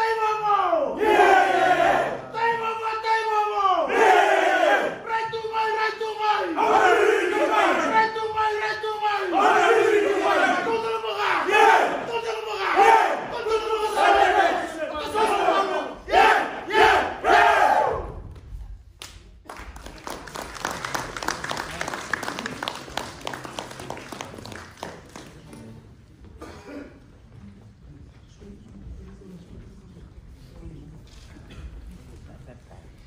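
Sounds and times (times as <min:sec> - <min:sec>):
men chanting and shouting in unison: 0:00.0 - 0:18.0
applause: 0:19.0 - 0:25.8.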